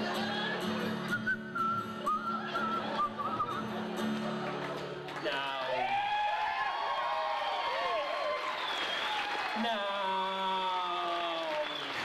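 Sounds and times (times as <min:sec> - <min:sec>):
guitar accompaniment: 0:00.0 - 0:06.0
whistled melody: 0:00.9 - 0:03.9.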